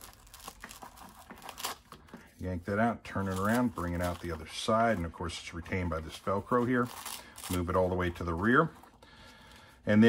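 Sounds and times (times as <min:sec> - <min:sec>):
velcro ripping apart: 0:00.0 - 0:01.9, 0:06.8 - 0:07.9.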